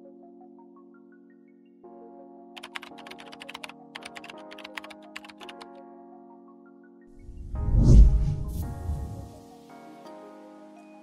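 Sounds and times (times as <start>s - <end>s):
soft background music chords: 0.0s - 11.0s
keyboard key clicks: 2.6s - 5.7s.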